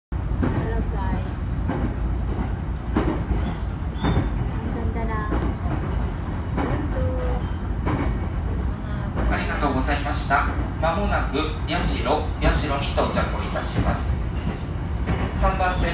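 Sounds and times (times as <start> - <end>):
train rumbling on rails: 0.1 - 15.9.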